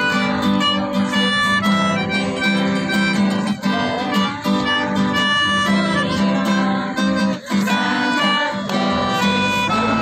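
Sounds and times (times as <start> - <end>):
acoustic guitar strumming: 0.0 - 10.0
held melody line: 0.0 - 10.0
mandolin strumming: 0.0 - 10.0.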